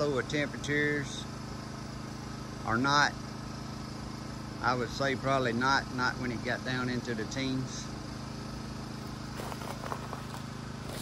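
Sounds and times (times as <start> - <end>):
generator running: 0.0 - 11.0.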